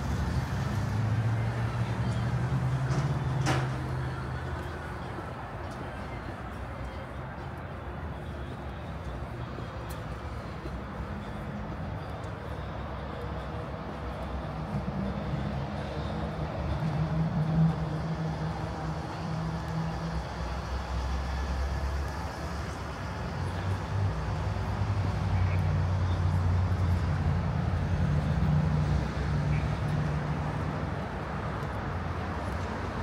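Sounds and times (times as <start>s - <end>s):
car engines in street traffic: 0.0s - 33.0s.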